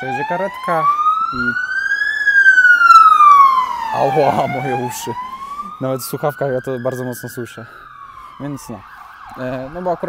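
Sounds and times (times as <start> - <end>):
ambulance siren wailing: 0.0 - 10.0.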